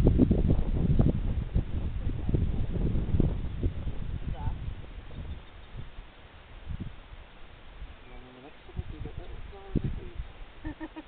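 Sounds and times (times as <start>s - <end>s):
low rumbling thumps on microphone: 0.0s - 8.0s.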